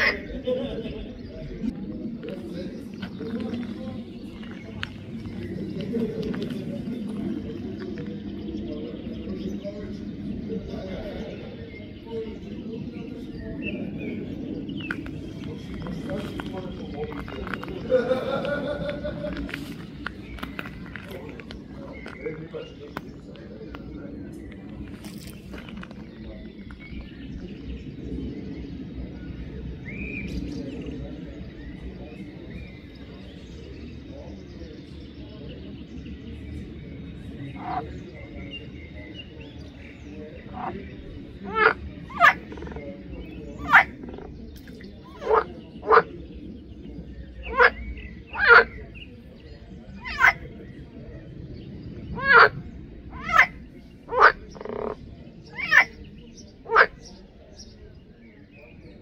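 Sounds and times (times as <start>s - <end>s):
birds chirping: 0.0s - 59.0s
frogs croaking: 0.0s - 59.0s.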